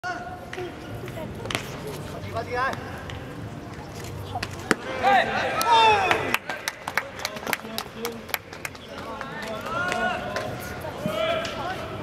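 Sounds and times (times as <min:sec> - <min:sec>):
people shouting: 0:04.9 - 0:06.4
sharp claps: 0:05.6 - 0:10.5.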